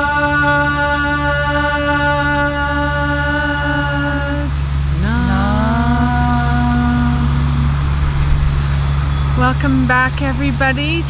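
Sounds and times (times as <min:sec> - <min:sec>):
women chanting long held notes: 0:00.0 - 0:07.9
distant traffic rumble: 0:00.0 - 0:11.0.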